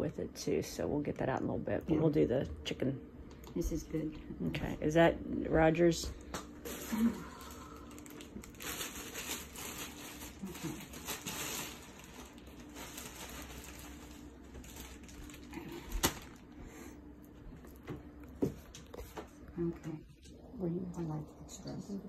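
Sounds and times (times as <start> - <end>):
plastic bag crinkling: 6.5 - 16.6.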